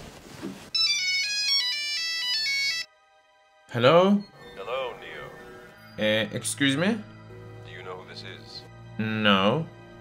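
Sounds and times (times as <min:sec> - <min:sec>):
phone ringtone melody: 0:00.8 - 0:07.1.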